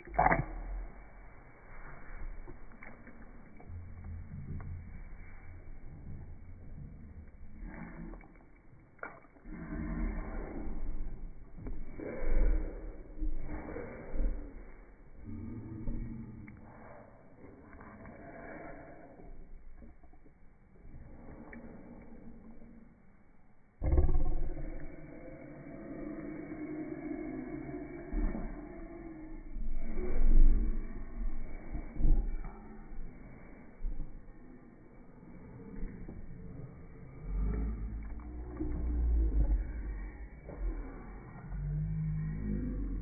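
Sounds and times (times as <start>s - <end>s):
low rumble: 0.0s - 43.0s
steady low hum: 0.0s - 43.0s.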